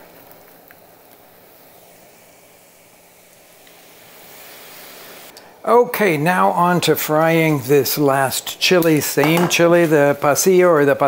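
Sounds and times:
oil sizzling while frying: 0.0 - 5.7.

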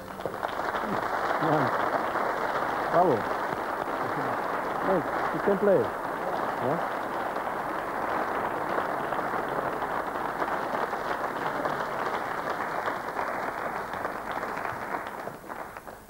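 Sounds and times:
studio audience applauding: 0.0 - 16.0.

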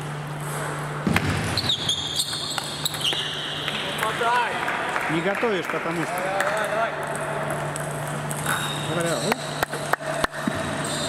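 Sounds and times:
shoe squeaks on floor: 1.4 - 3.9, 8.4 - 9.6, 10.5 - 11.0.

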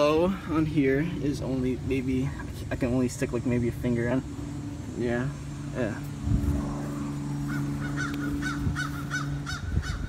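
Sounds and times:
steady low hum: 0.0 - 10.0
bird calling: 6.7 - 10.0.

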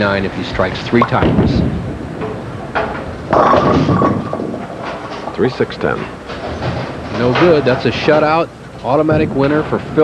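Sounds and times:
bowling pins crashing: 2.8 - 7.7
bowling ball rolling on wooden lane: 3.0 - 5.4.

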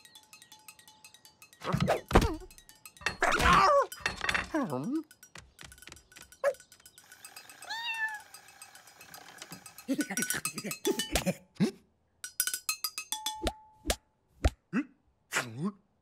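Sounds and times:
chopsticks drumming on metal pots: 0.0 - 11.3.

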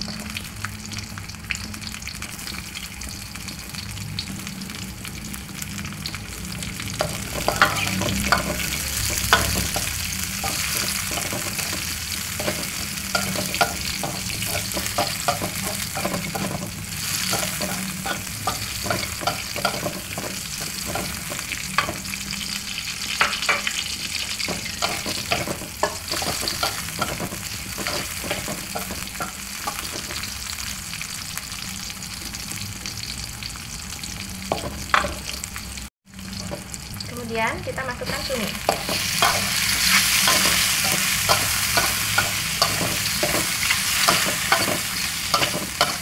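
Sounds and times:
food sizzling in oil: 0.0 - 46.0
metal spatula scraping a wok: 7.0 - 22.2, 38.6 - 46.0.

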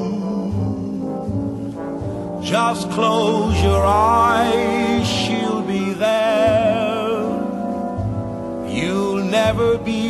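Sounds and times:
bass line: 0.0 - 10.0
orchestral brass chords: 0.0 - 10.0.

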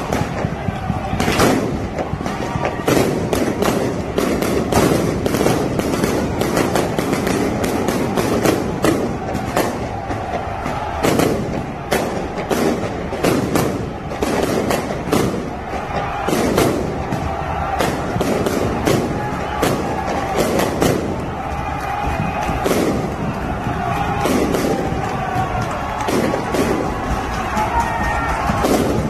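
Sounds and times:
firecrackers banging: 0.0 - 29.0
large crowd din: 0.0 - 29.0.

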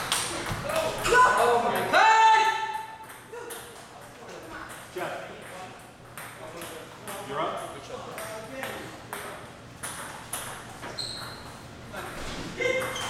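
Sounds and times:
table tennis balls clicking: 2.8 - 11.7.

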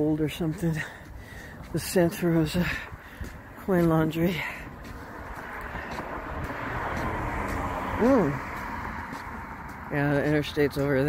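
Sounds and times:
highway traffic rushing: 0.0 - 11.0.

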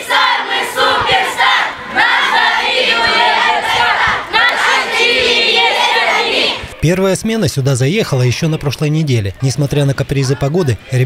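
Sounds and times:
children chanting in unison: 0.0 - 6.7.

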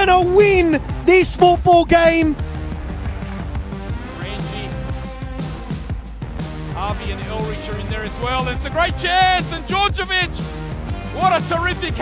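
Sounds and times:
commentator speaking: 0.0 - 2.4, 4.1 - 4.8, 6.8 - 10.5, 11.1 - 12.0
background music with steady beat: 0.0 - 12.0.

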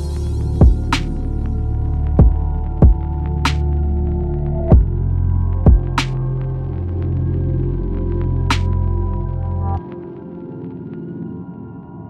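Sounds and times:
sustained synth chords: 0.0 - 9.8
deep kick drums falling in pitch: 0.6 - 1.0, 2.2 - 3.1, 4.7 - 5.0, 5.7 - 6.0.

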